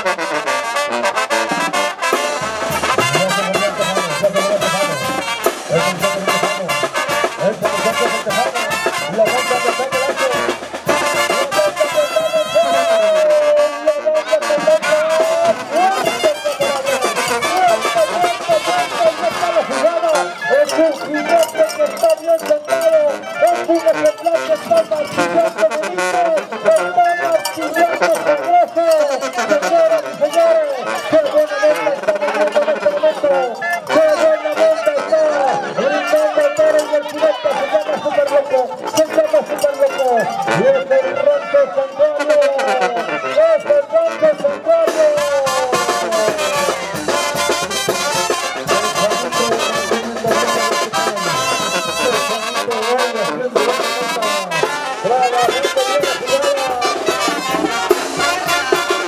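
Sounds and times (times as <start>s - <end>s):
brass band music: 0.0s - 59.0s.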